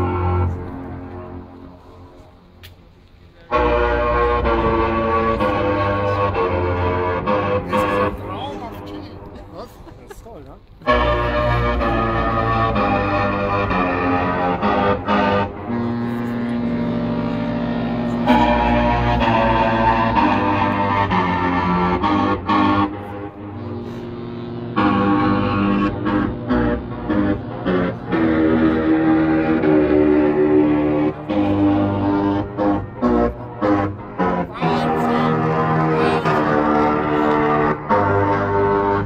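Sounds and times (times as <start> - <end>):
ship's musical horn: 0.0 - 2.5, 3.4 - 9.4, 10.8 - 39.0.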